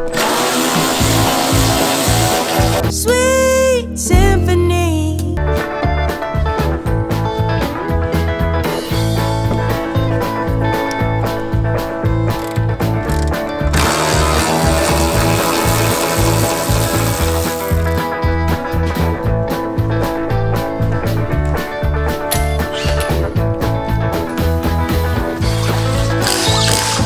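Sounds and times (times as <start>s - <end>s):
background music with steady beat: 0.0s - 27.0s
socket ratchet clicking: 12.3s - 18.0s, 25.5s - 27.0s.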